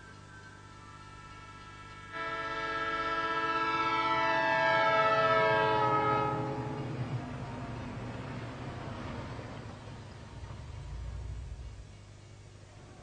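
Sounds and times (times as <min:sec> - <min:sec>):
low rumble of passing train: 0:00.0 - 0:13.0
train horn blast: 0:00.9 - 0:07.3.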